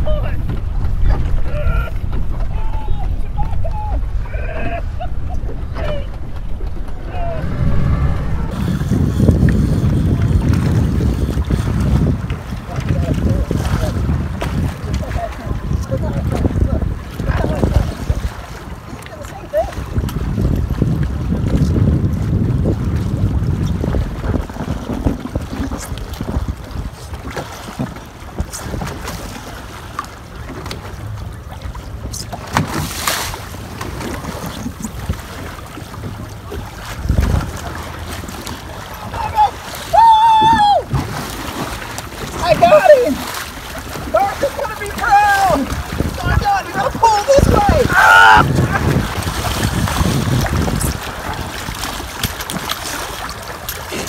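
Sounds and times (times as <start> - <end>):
water lapping around a boat: 0.0 - 54.0
wind buffeting microphone: 0.0 - 54.0.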